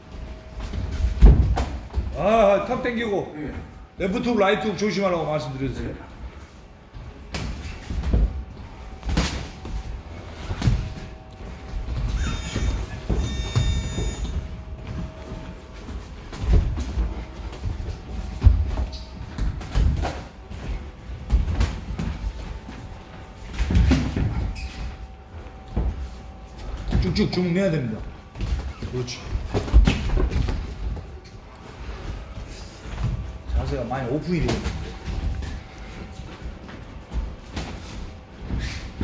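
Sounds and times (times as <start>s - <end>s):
footwork on ring canvas: 5.8s - 39.0s.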